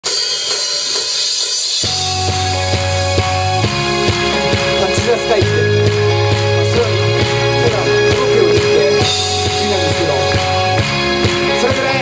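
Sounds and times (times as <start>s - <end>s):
cymbals ringing: 0.0s - 11.6s
drum strokes: 0.0s - 12.0s
bass and electric guitars chord: 1.8s - 12.0s.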